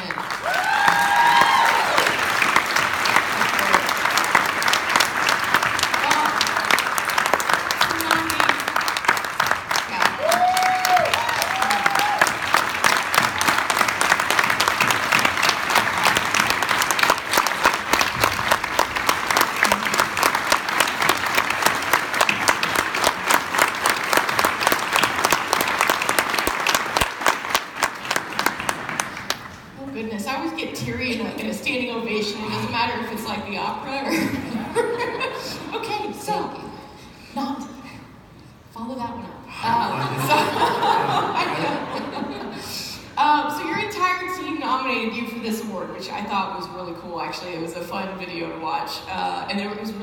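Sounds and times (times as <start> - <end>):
large audience applauding: 0.0 - 29.8.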